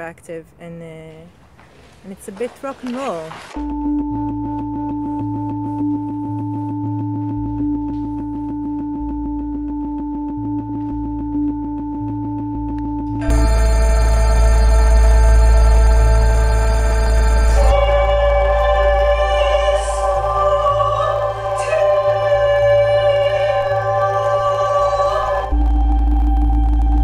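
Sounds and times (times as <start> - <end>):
fast ticking pulse: 3.6 - 27.0
loud held synthesizer chord: 3.6 - 27.0
low bass: 3.6 - 27.0
synth drone tones: 3.6 - 27.0.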